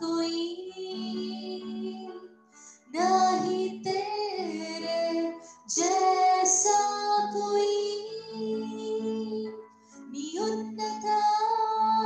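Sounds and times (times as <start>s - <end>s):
woman singing gospel song: 0.0s - 2.2s, 2.9s - 9.5s, 10.2s - 12.0s.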